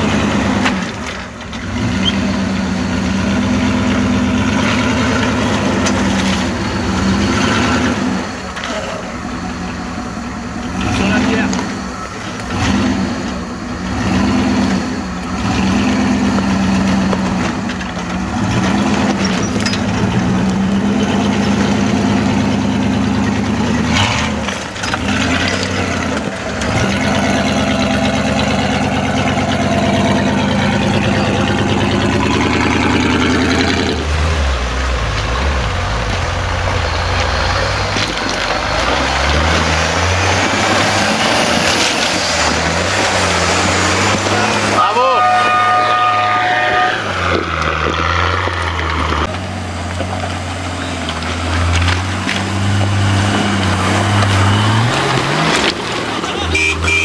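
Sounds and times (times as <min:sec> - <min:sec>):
off-road engines revving under load: 0:00.0 - 0:57.0.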